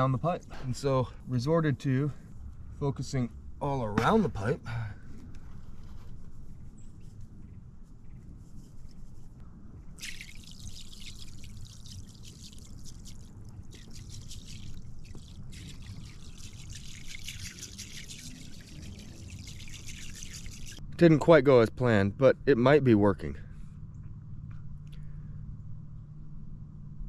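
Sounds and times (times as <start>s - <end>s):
material trickling into water: 9.9s - 20.8s.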